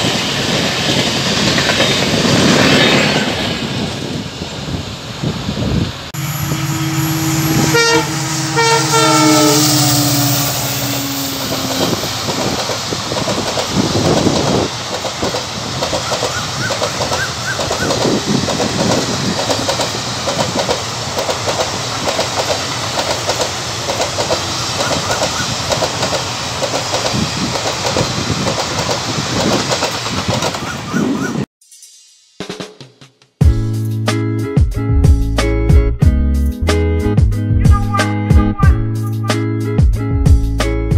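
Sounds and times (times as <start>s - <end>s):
wheels clickety-clack over rail joints: 0.0s - 4.2s, 11.4s - 31.4s
train coaches rumbling past: 0.0s - 31.5s
locomotive horn: 6.2s - 12.1s, 37.7s - 39.5s.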